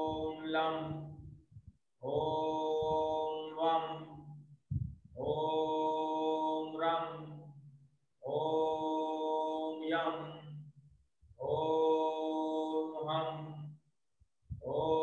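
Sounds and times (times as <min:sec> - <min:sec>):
man chanting held tones: 0:00.0 - 0:01.2, 0:02.0 - 0:04.4, 0:06.2 - 0:07.4, 0:09.4 - 0:10.6, 0:12.8 - 0:13.7.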